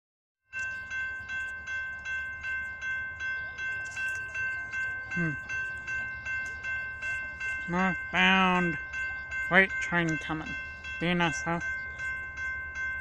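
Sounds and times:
railroad crossing bell ringing: 0:00.4 - 0:13.0.

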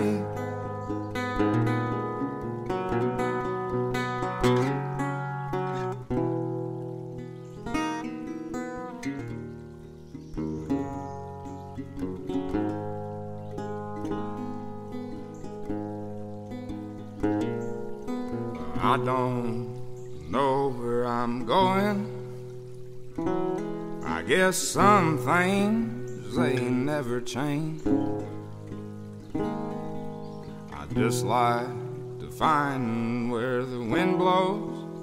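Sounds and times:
person singing: 0:00.0 - 0:01.2, 0:18.6 - 0:22.4, 0:24.0 - 0:28.4, 0:30.7 - 0:35.0
acoustic guitar picking and strumming: 0:00.0 - 0:35.0.

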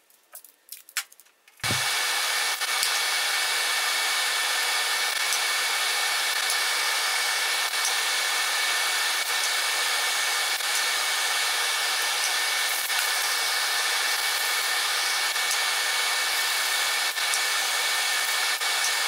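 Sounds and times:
blower fan rushing: 0:01.6 - 0:19.0.

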